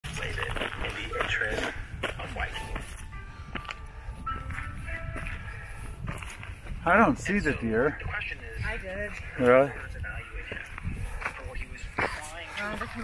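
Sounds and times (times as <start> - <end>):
music: 0.1 - 13.0.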